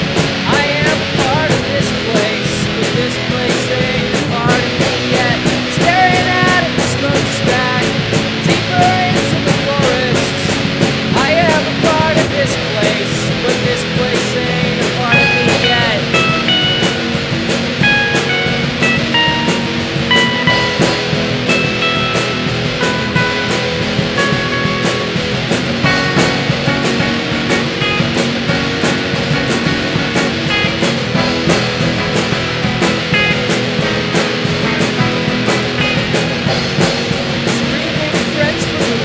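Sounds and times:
guitars playing melodic line: 0.0 - 39.0
steady drum beat: 0.0 - 39.0.

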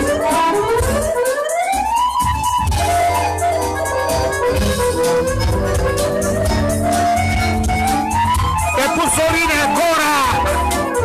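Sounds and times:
steady bass: 0.0 - 1.2, 2.3 - 11.0
folk band with accordion: 0.0 - 11.0
sliding lead melody: 0.0 - 11.0.

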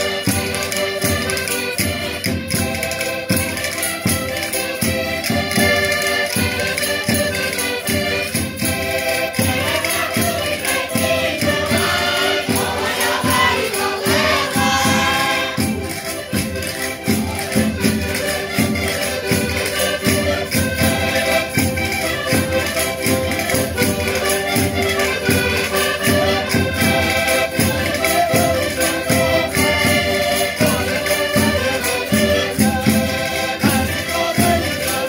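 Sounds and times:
button accordions playing folk tune: 0.0 - 35.0.

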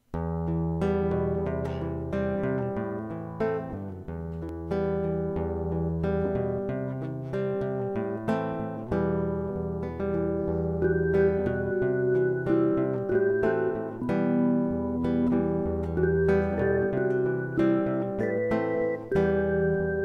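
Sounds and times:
acoustic guitar plucked notes: 0.1 - 20.0
held bass line: 9.2 - 20.0.

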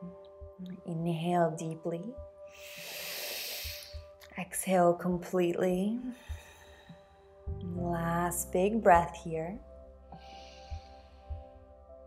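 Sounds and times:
soft background music: 0.0 - 12.0
woman breathing in deeply: 2.5 - 4.2, 6.1 - 7.5, 10.2 - 11.8.

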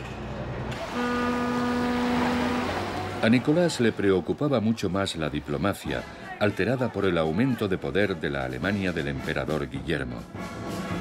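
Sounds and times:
ship's whistle long note: 0.8 - 3.0.

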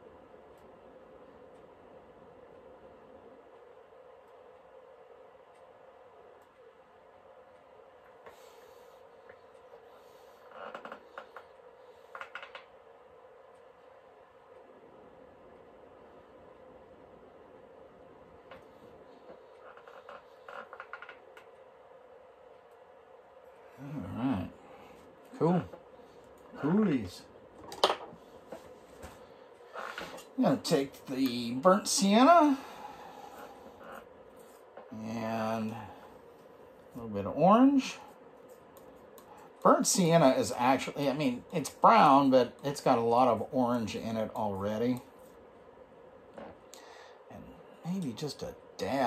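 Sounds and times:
faint room hum: 0.0 - 49.0.

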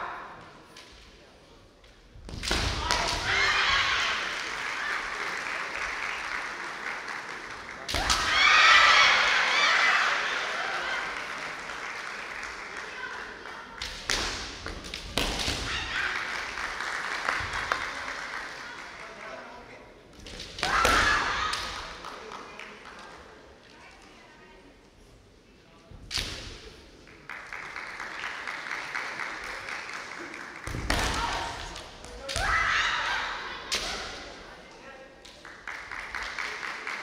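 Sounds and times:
fencers shouting: 2.7 - 4.3.

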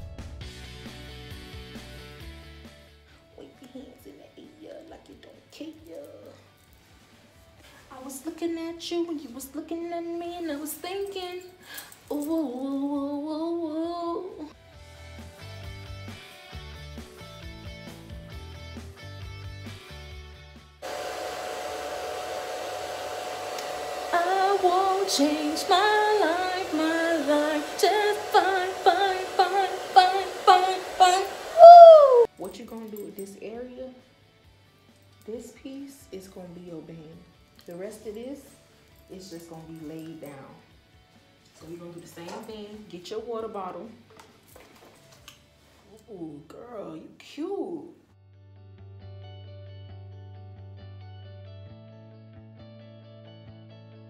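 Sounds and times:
background music: 0.0 - 20.8, 24.0 - 54.0
hair dryer running: 20.8 - 32.3.

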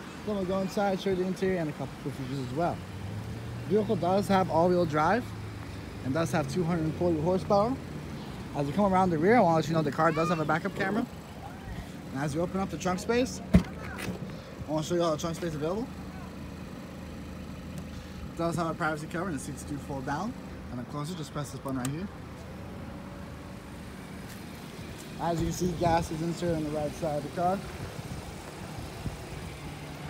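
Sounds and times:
car engine idling: 0.0 - 30.0
outdoor background noise: 0.0 - 30.0.

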